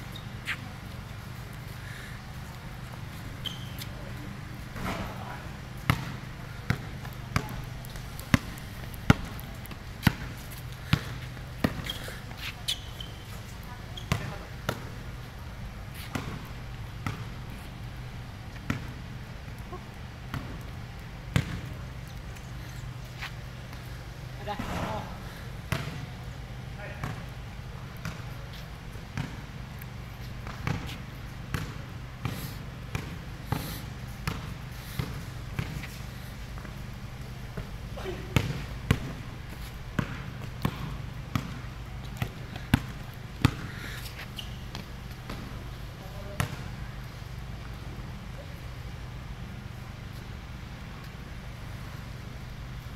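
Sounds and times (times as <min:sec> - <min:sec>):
steady low hum: 0:00.0 - 0:52.9
basketball bouncing on concrete: 0:02.9 - 0:17.7, 0:18.5 - 0:19.0, 0:19.7 - 0:21.8, 0:23.2 - 0:26.2, 0:26.8 - 0:35.9, 0:36.6 - 0:46.7.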